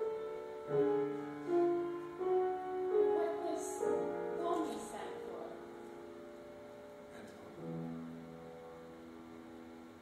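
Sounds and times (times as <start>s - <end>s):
piano chords ringing: 0.0s - 10.0s.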